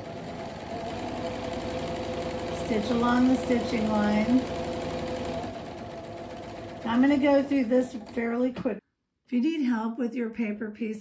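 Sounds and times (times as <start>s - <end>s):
sewing machine stitching: 0.0s - 8.5s.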